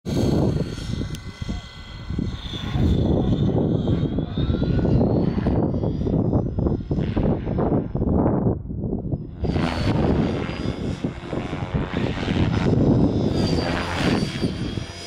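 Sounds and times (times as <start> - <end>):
distant model helicopter whine: 0.1 - 15.0
wind buffeting microphone: 0.1 - 15.0.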